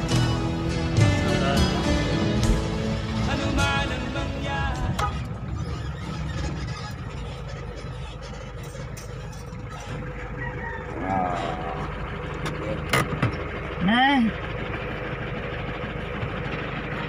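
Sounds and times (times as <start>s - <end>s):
vehicle engine and road noise: 0.0s - 17.0s.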